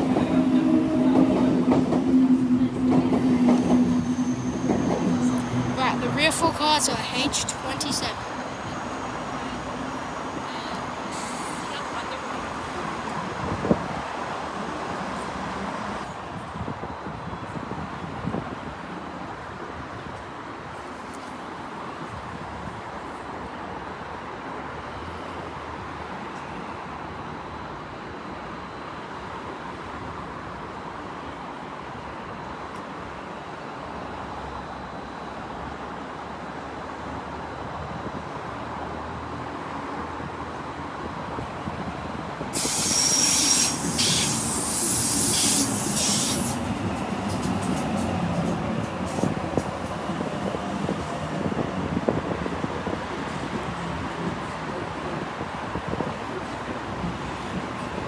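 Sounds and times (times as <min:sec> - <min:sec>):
loud hiss: 0:11.0 - 0:11.8, 0:42.5 - 0:46.7.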